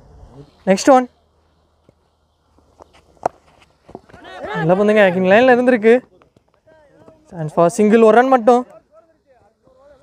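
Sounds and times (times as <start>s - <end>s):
light footsteps on dry dirt: 0.6s - 10.0s.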